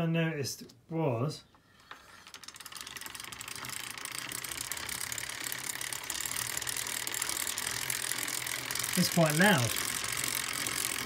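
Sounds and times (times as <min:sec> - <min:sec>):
bicycle chain ticking whirr: 0:01.7 - 0:11.0.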